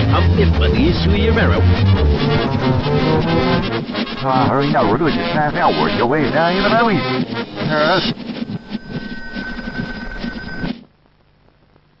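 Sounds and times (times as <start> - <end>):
muddy old film soundtrack: 0.0 - 11.2
steady high whine: 0.0 - 11.4.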